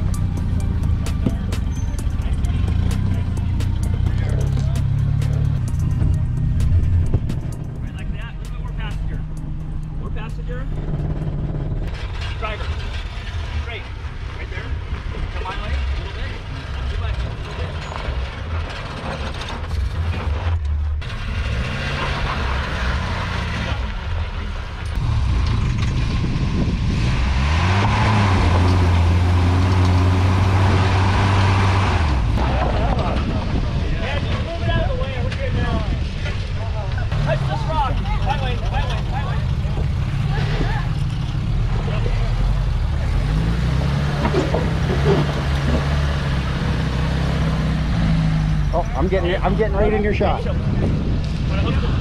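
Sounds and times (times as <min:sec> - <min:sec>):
off-road engines revving: 0:00.0 - 0:52.0.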